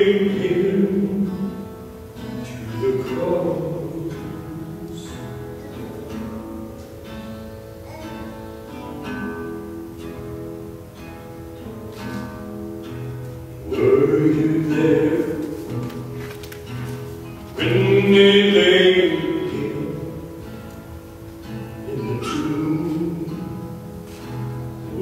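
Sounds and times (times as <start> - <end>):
acoustic guitar playing: 0.0 - 25.0.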